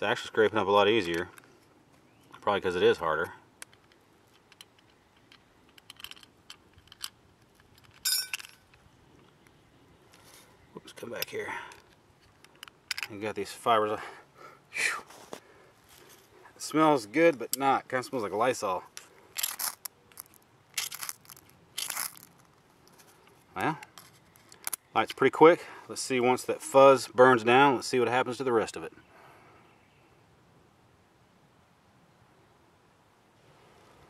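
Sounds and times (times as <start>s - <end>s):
small clicks: 3.6s - 10.3s
metallic clinks of a tin: 8.0s - 8.6s
ringing metallic clink: 8.0s - 8.6s.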